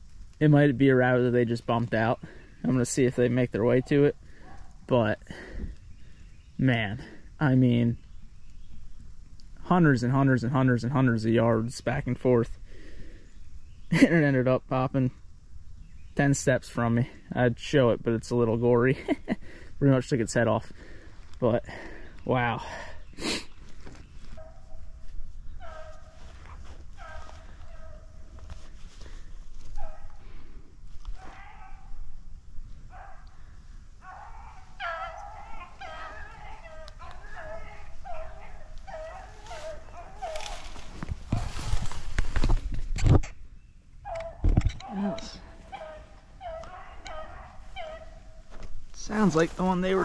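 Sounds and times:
beagles baying: 0:03.6 - 0:06.2, 0:24.2 - 0:41.7, 0:43.9 - 0:50.0.

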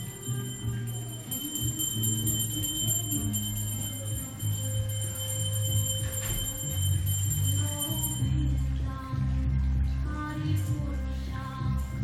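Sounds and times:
bell rung rapidly: 0:00.0 - 0:08.7.

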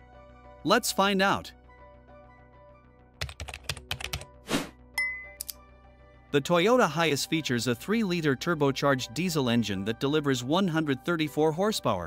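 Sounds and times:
soft background music: 0:00.0 - 0:12.0
short swish: 0:04.4 - 0:04.8.

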